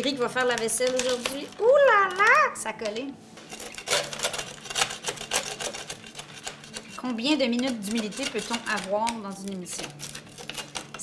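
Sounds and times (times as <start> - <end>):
spatula scraping metal baking sheet: 3.4 - 11.0.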